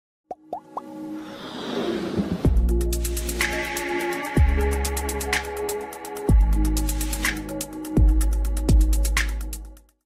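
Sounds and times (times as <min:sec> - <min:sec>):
whoosh: 0:01.2 - 0:02.8.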